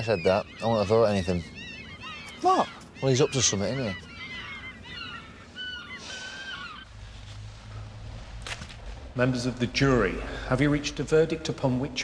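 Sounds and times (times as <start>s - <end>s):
gulls calling: 0.0s - 7.0s
low steady hum: 4.0s - 12.0s.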